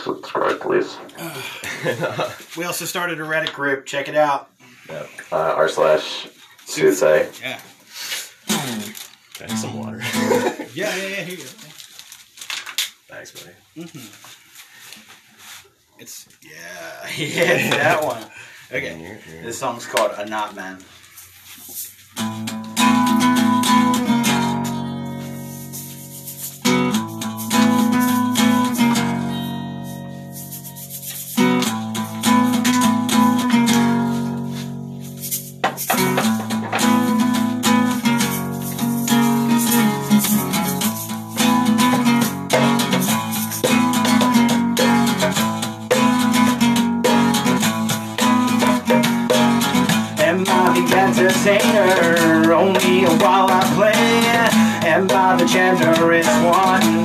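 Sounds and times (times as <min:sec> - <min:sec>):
hand shaker rattling: 0:21.1 - 0:22.1, 0:25.2 - 0:28.4, 0:29.8 - 0:31.7, 0:35.0 - 0:37.2, 0:38.0 - 0:46.4
guitar strumming: 0:22.2 - 0:57.0
guitar chords ringing: 0:22.3 - 0:25.3, 0:26.7 - 0:30.3, 0:31.5 - 0:35.1, 0:35.9 - 0:57.0.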